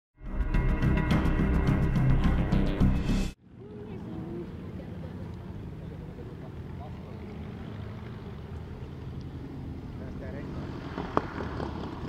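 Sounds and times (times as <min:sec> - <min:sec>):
light aircraft engine droning: 0:03.4 - 0:12.0.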